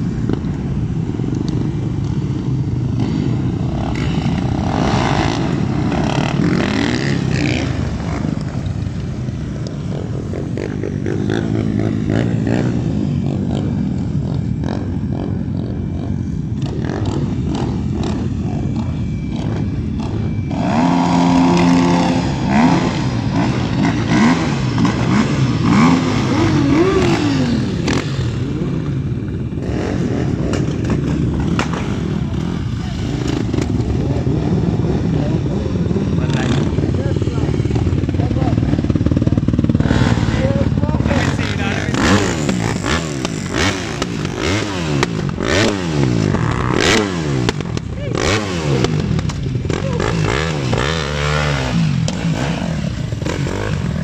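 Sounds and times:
motorcycles idling and revving: 0.0s - 54.0s.

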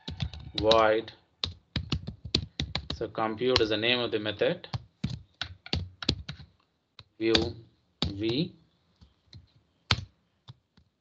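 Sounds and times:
keyboard typing: 0.0s - 3.9s, 4.7s - 10.9s.

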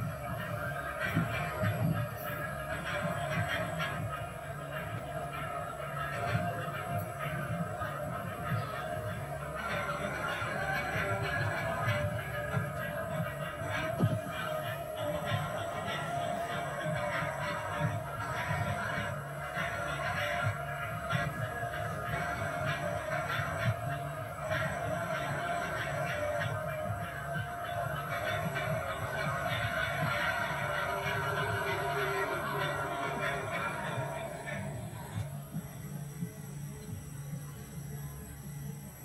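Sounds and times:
film music from tv speaker: 0.0s - 39.0s.

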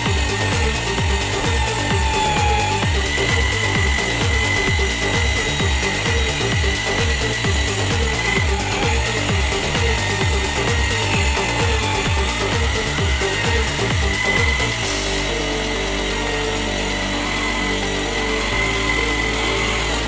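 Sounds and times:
background music: 0.0s - 20.0s
electric drill sanding: 0.0s - 20.0s.

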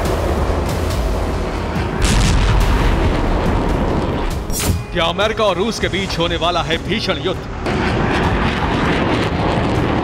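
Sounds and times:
heavy low explosion rumble: 0.0s - 4.5s, 7.4s - 10.0s
background music: 0.0s - 10.0s
explosion blast: 2.0s - 4.9s, 7.6s - 10.0s.

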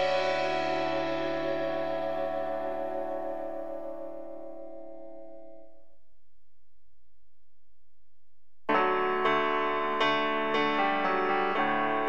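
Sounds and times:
music chord ringing: 0.0s - 5.7s.

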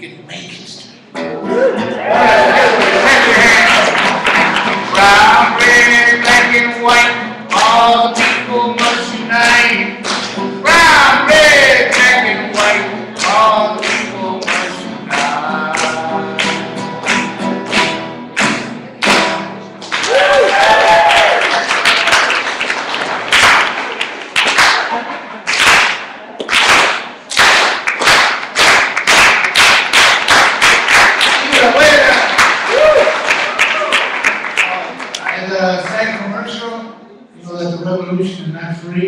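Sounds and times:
strummed acoustic guitar: 1.1s - 20.0s
applause: 2.6s - 5.0s, 10.0s - 10.4s, 12.6s - 15.2s, 15.8s - 36.2s
hand claps: 2.7s - 10.4s, 11.9s - 20.5s, 21.3s - 36.0s
man singing: 2.8s - 17.4s.

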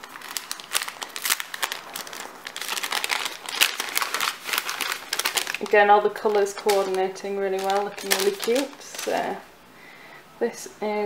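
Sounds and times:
paper gift bag rustling: 0.0s - 9.4s.

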